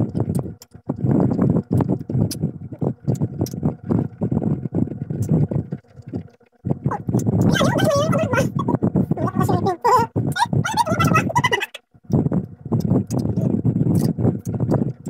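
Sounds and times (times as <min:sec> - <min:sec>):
chewing crunchy fruit: 0:00.0 - 0:07.8, 0:12.1 - 0:15.0
mouth clicks: 0:05.1 - 0:08.8, 0:10.2 - 0:15.0.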